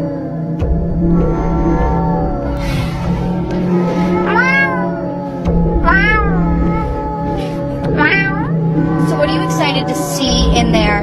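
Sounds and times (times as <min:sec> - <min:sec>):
background music: 0:00.0 - 0:11.0
woman meowing: 0:05.8 - 0:11.0.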